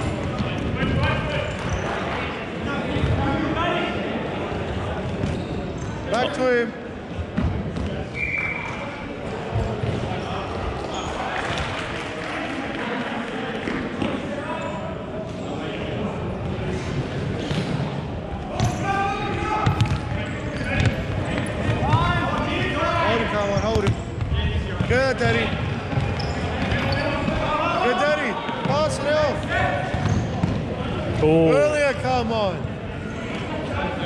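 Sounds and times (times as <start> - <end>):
players' voices: 0.0 - 34.0
shoes squeaking on wooden floor: 25.8 - 27.6.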